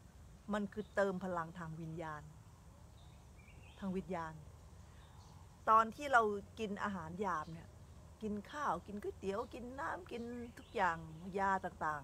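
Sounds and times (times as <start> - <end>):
low background hum: 0.0 - 12.0
woman speaking: 0.5 - 2.3, 3.8 - 4.5, 5.7 - 12.0
faint bird chirp: 0.5 - 12.0.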